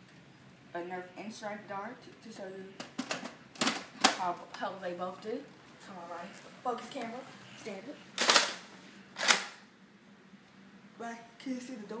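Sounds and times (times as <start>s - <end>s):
toy dart blaster firing: 8.2s - 8.6s.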